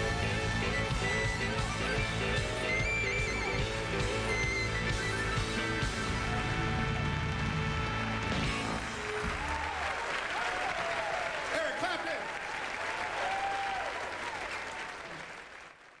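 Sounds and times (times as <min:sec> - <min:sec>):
audience applause and cheering: 0:00.0 - 0:16.0.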